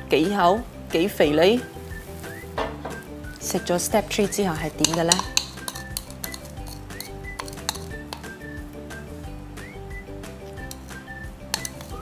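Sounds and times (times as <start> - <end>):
background music: 0.0 - 12.0
spoon clinking against glass: 4.8 - 8.2.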